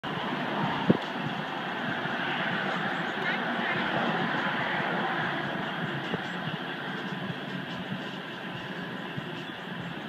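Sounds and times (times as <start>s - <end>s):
car road and tyre noise: 0.0s - 10.0s.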